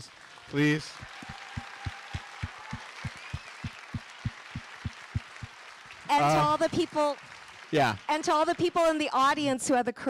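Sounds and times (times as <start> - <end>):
audience applauding: 0.0 - 9.0
nearby person clapping: 0.6 - 6.6.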